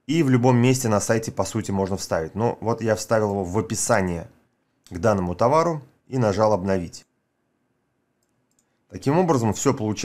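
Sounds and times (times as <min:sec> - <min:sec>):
computer mouse clicks: 0:08.2 - 0:08.8.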